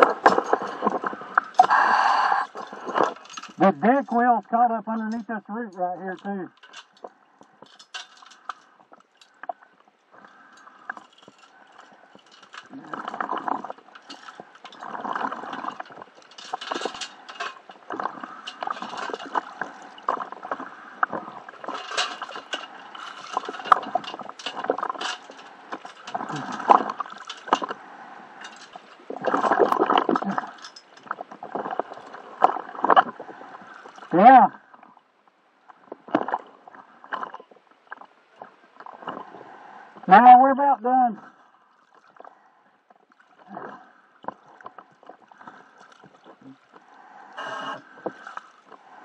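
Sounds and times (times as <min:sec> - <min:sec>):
scrapes and small knocks: 0:00.0 - 0:01.6, 0:06.1 - 0:27.8, 0:28.4 - 0:34.1
water sloshing and gurgling: 0:00.0 - 0:40.1, 0:41.2 - 0:49.0.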